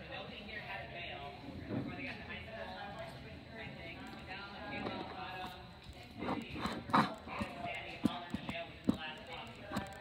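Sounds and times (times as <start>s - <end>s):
indistinct chatter: 0.0s - 10.0s.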